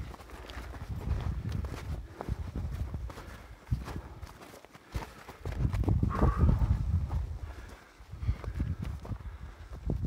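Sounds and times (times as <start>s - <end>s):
footsteps on loose rock: 0.0s - 10.0s.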